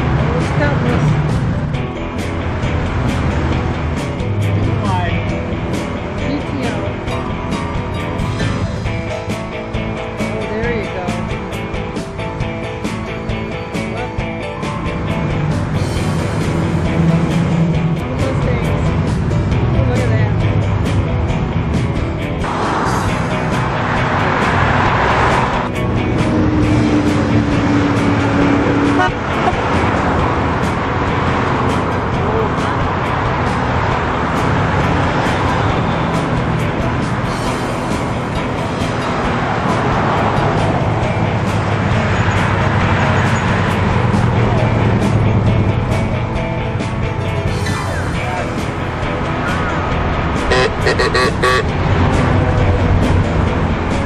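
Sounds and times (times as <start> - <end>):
cars driving past: 0.0 - 10.3, 11.1 - 54.0
music: 0.0 - 54.0
car horn: 28.8 - 29.7, 50.5 - 51.8.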